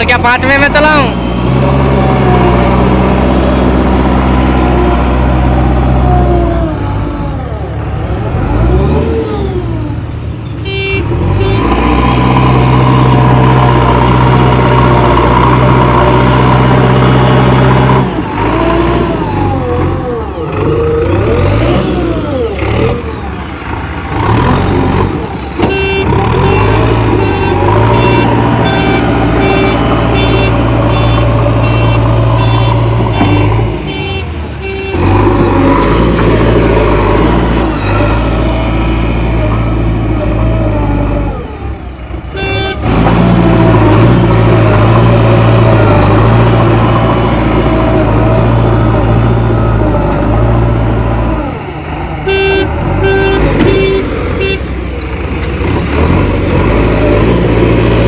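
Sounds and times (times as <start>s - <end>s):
diesel engine running under load: 0.0s - 58.0s
short high beep: 25.7s - 34.9s, 52.3s - 54.6s.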